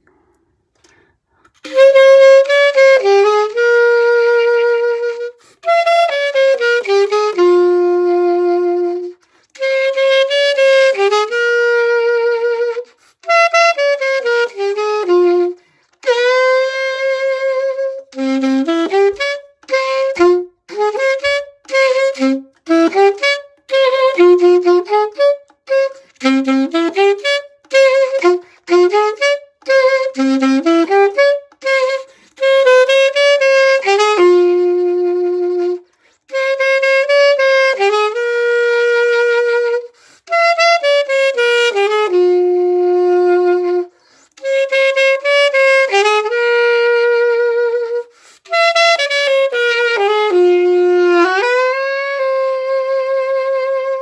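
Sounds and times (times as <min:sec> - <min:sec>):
alto saxophone melody: 0:00.0 - 0:54.0.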